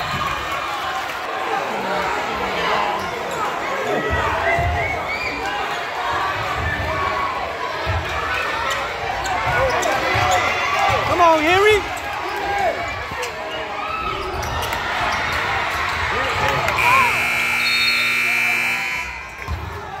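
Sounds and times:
spectators shouting: 0:09.6 - 0:20.0
scoreboard buzzer: 0:16.8 - 0:19.4.

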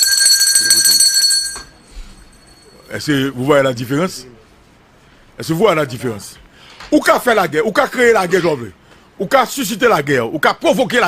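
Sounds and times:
small metal hand bell ringing: 0:00.0 - 0:02.8.

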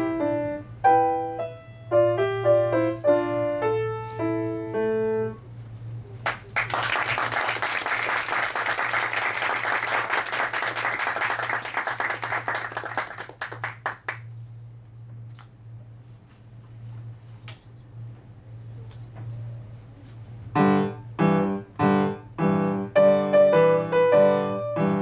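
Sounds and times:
audience applauding: 0:06.2 - 0:14.3.

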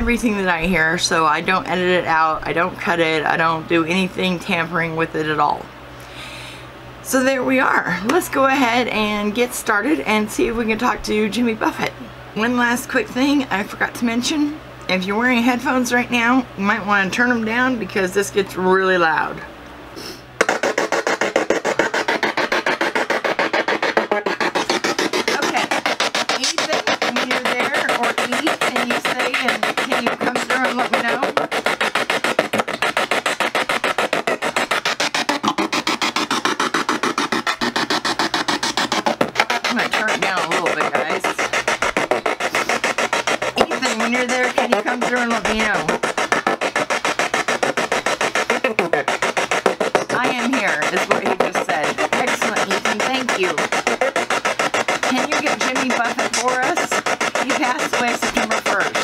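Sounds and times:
chopping radio static: 0:23.2 - 0:33.7, 0:39.6 - 0:43.0, 0:43.6 - 0:46.9, 0:48.4 - 0:54.4, 0:55.0 - 0:59.0.

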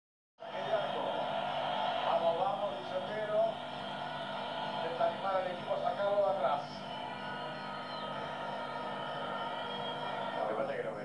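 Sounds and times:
crowd noise: 0:00.4 - 0:11.0.

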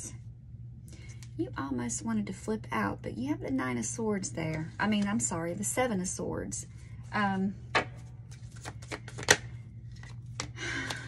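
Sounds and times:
cards being shuffled: 0:07.8 - 0:11.0.

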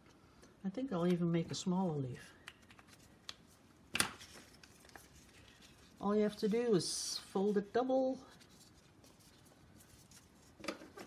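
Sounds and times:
paper rustling and crinkling: 0:02.6 - 0:11.0.

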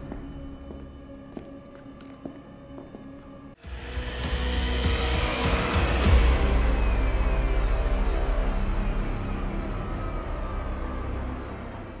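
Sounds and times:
film score music: 0:00.0 - 0:12.0
emergency sirens: 0:04.6 - 0:12.0.

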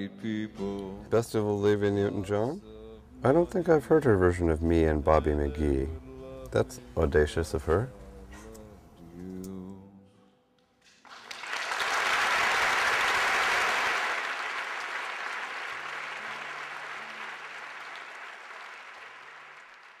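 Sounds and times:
audience applause: 0:11.0 - 0:20.0.

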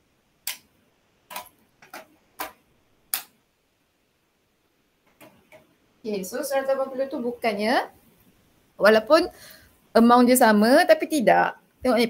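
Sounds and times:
sharp clicks: 0:00.4 - 0:00.7, 0:01.3 - 0:03.4.

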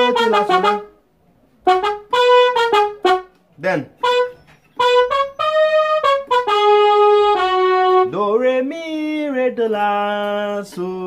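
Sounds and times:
brass-like keyboard melody: 0:00.0 - 0:08.7.

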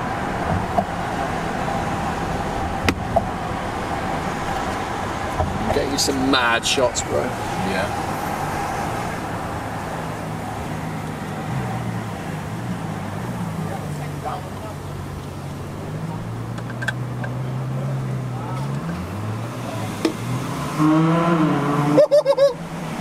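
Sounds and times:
car engine running at low revs: 0:00.0 - 0:23.0.

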